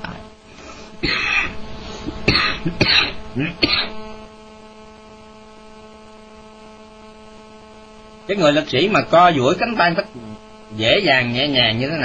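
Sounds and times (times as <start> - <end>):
electrical hum from sound system: 0.0 - 12.0.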